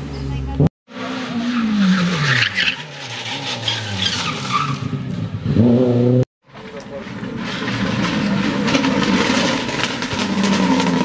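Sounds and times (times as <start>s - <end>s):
rally car engine: 0.0s - 11.0s
tyres squealing on asphalt: 0.9s - 5.3s, 6.4s - 11.0s.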